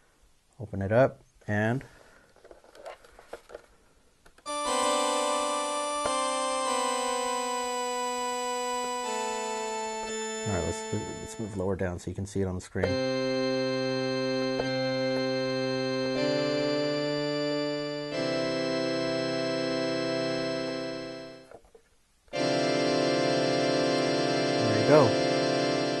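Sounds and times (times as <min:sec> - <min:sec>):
church organ chords: 0:04.5 - 0:11.9, 0:12.8 - 0:21.5, 0:22.3 - 0:26.0.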